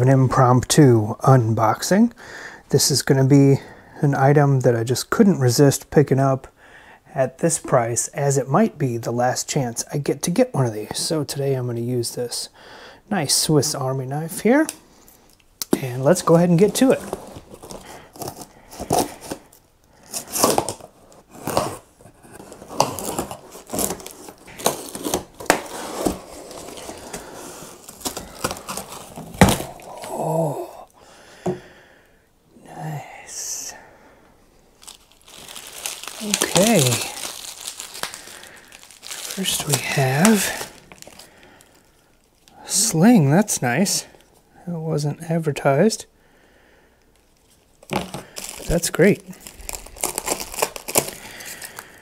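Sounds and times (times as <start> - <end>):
plastic and bubble wrap crinkling: 15.7 - 30.6, 34.8 - 44.4, 47.1 - 52.0
packing tape ripping: 16.6 - 30.3, 34.8 - 41.3, 47.8 - 51.9
man's voice: 36.2 - 37.2.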